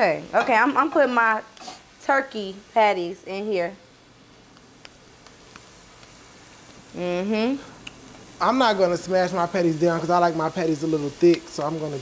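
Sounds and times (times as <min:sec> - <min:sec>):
patties sizzling in a pan: 0:00.0 - 0:12.0.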